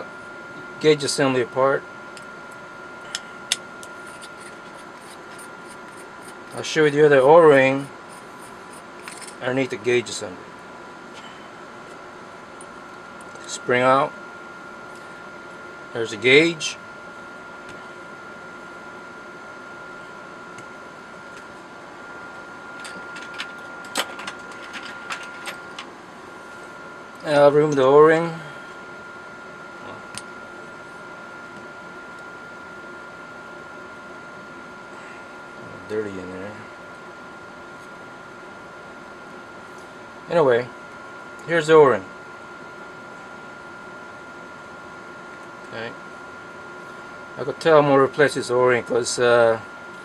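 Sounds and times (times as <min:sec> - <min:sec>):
faint hum: 0:00.0 - 0:50.0.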